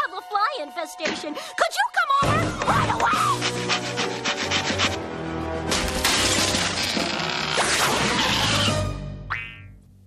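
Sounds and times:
background music: 0:00.0 - 0:10.0
cartoon wall smashing and crumbling: 0:05.7 - 0:08.7.

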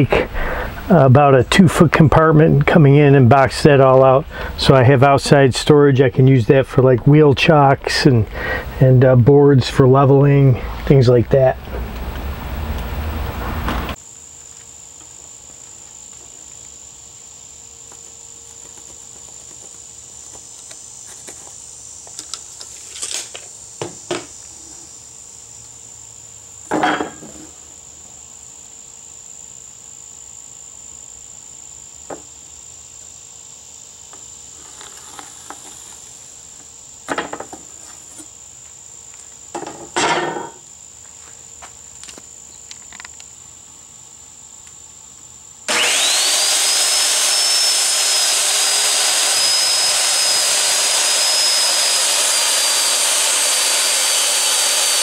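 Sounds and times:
crickets chirping: 0:00.0 - 0:46.3
circular saw running: 0:45.7 - 0:55.0.

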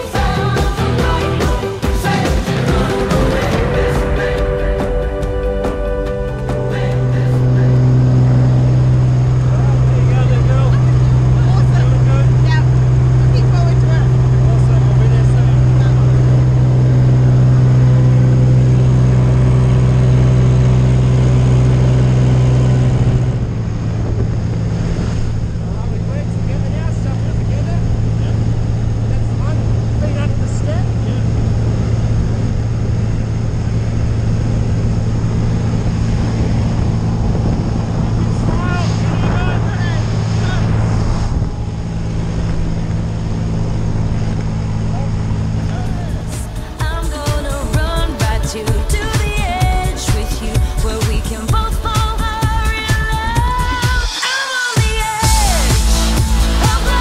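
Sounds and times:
light aircraft engine drone: 0:06.1 - 0:49.7.

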